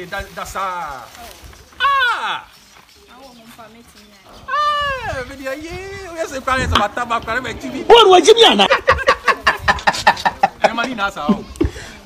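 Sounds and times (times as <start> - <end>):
high drawn-out cry: 1.8 - 2.5.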